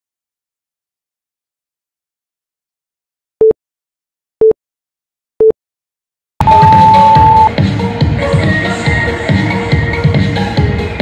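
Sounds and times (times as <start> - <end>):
short electronic beeps: 6.4 - 7.5
upbeat electronic dance music: 6.4 - 11.0.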